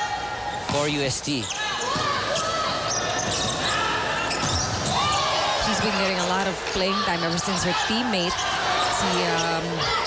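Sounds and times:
shoes squeaking on hardwood court: 0.5 - 7.7.

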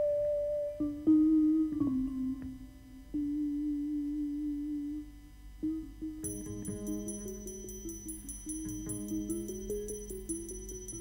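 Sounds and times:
vibraphone note ringing: 6.2 - 11.0.

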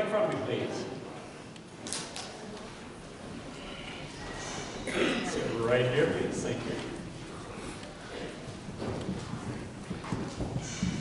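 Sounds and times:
children's footsteps and shuffling: 0.2 - 11.0.

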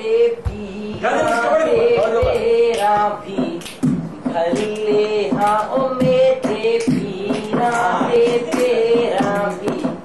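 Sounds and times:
steady rhythmic beat: 0.0 - 10.0.

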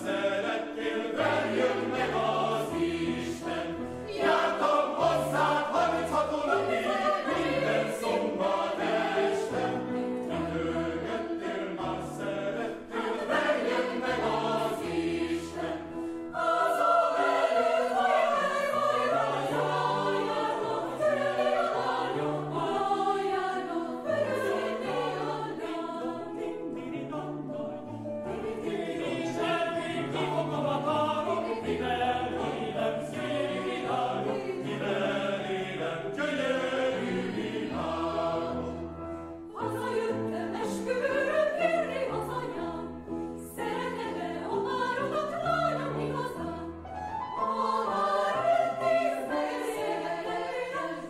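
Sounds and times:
mixed choir singing: 0.0 - 51.0
piano accompaniment: 0.0 - 51.0.

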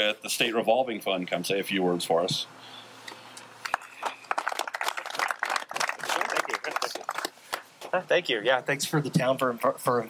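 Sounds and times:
crowd clapping: 3.6 - 7.7.

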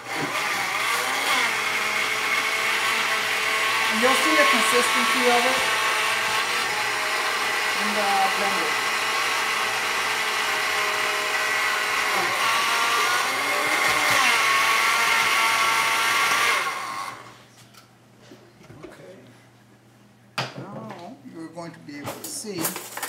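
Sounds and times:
blender motor running: 0.0 - 17.4.

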